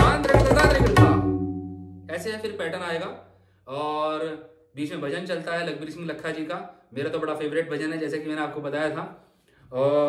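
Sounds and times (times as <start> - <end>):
man's voice: 0.0 - 1.4, 2.1 - 10.0
tabla drums ringing: 0.0 - 2.6.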